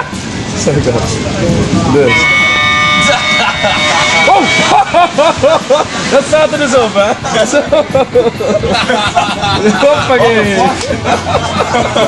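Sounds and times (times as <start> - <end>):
moving train rumble: 0.0 - 12.0
toy trumpet high note: 2.1 - 4.9.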